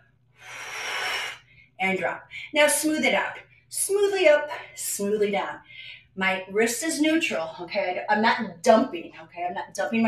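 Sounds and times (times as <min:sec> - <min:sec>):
person breathing out: 0:00.4 - 0:01.7.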